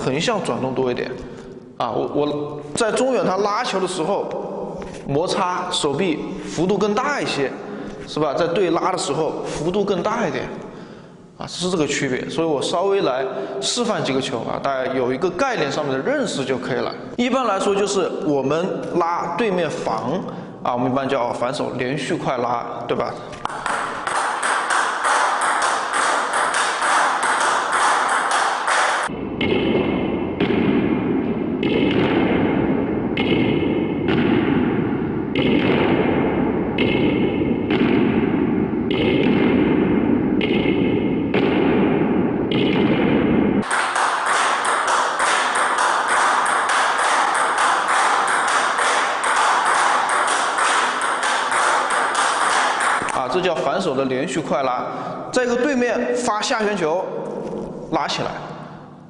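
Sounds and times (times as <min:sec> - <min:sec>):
table tennis ball clicking: 0:23.4 - 0:29.1, 0:43.6 - 0:53.2
table tennis ball clicks: 0:23.4 - 0:29.1.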